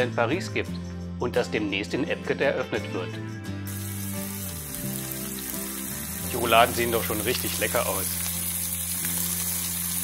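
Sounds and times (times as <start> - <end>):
background music with bass line: 0.0 - 10.0
food sizzling in hot oil: 3.6 - 10.0.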